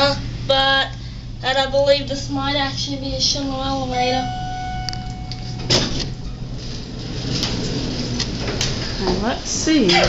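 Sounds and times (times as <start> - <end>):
steady low hum: 0.0 - 10.0
elevator doors sliding open: 4.0 - 10.0.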